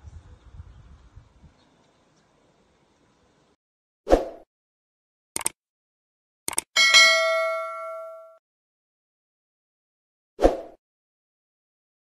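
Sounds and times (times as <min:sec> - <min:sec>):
bell ding: 0:06.8 - 0:08.4.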